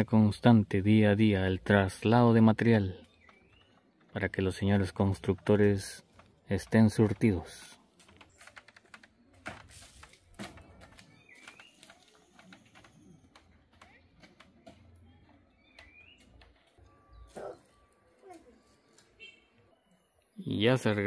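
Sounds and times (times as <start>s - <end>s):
bird chirping: 2.8s - 4.9s, 10.5s - 21.0s
faint clicks and knocks: 3.0s - 19.2s.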